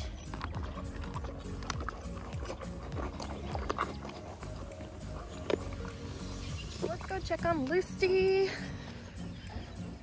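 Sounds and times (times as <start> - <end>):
background music: 0.0 - 10.0
horse chewing feed pellets: 0.0 - 10.0.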